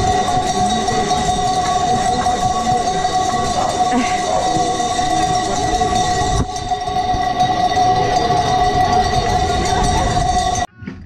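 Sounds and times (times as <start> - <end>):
hooves clattering on asphalt: 0.0 - 10.7
sheep bells jangling: 0.0 - 10.7.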